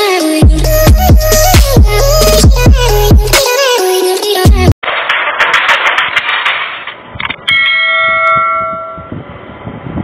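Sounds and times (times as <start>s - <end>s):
bell chime: 7.5s - 9.1s.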